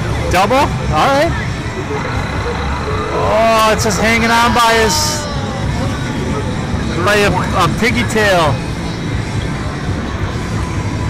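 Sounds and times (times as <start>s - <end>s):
distant chatter: 0.0s - 11.0s
game machine noise: 0.1s - 9.1s.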